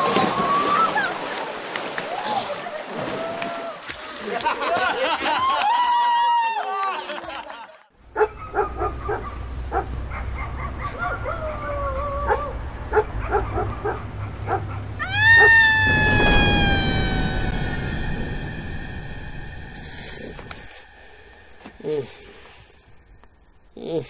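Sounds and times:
dog barking: 0:08.2 - 0:11.6, 0:12.3 - 0:14.9
dog howling: 0:14.5 - 0:17.9.

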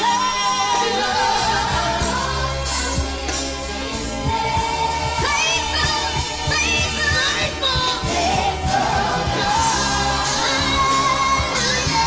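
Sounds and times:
amplified band backing: 0:00.0 - 0:12.0
woman singing into a microphone: 0:04.9 - 0:12.0.

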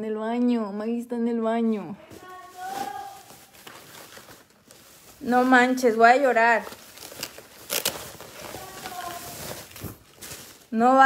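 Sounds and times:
tissue paper rustling and crinkling: 0:02.0 - 0:11.0.

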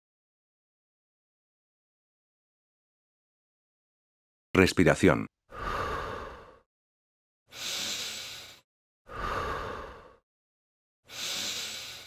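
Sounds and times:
person breathing: 0:05.5 - 0:06.7, 0:07.5 - 0:10.2, 0:11.0 - 0:12.0.

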